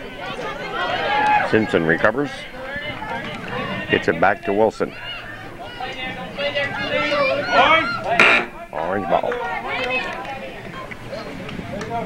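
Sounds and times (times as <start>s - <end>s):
voices calling out: 0.0s - 11.4s.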